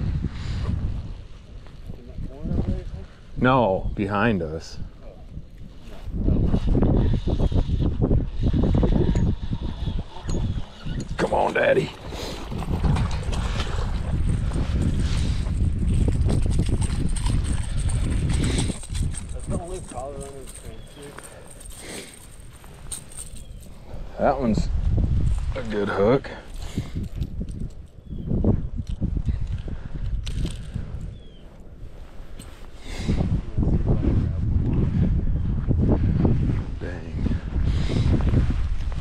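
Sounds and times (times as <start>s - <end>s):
wind buffeting microphone: 0.0s - 39.0s.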